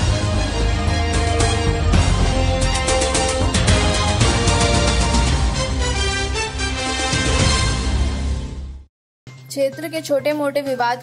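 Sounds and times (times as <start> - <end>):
news theme music with heavy bass: 0.0 - 8.9.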